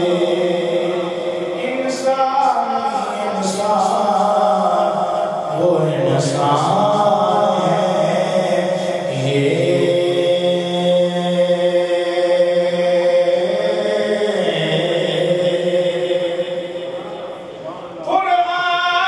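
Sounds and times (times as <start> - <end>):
man chanting devotional song: 0.0 - 19.0.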